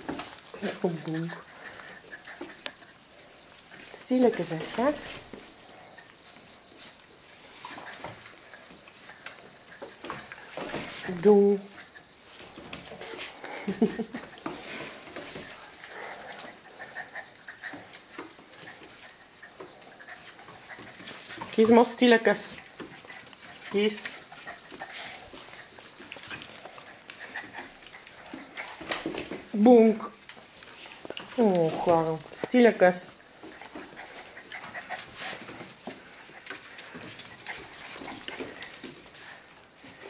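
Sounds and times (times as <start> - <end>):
dogs whining and grumbling: 0.0 - 32.4
claws clicking on tiled floor: 0.0 - 40.0.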